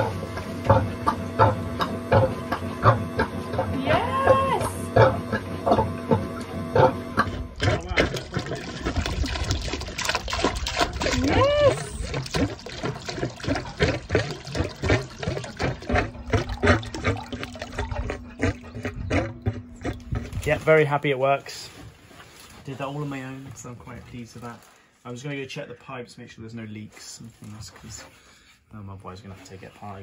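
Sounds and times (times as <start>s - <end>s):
water splashing from hose: 7.2s - 18.9s.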